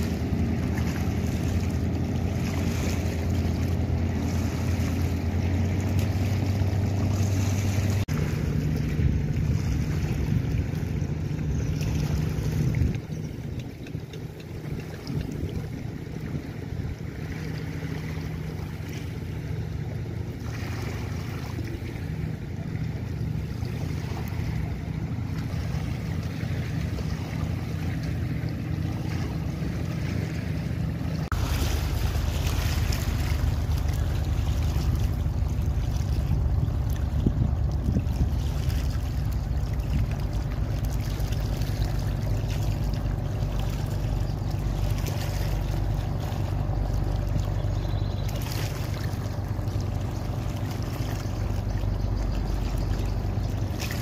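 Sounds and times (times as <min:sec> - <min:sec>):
speedboat engine drone: 0:00.0 - 0:54.0
water wash: 0:00.0 - 0:54.0
wind on microphone: 0:04.1 - 0:17.1, 0:31.3 - 0:40.4.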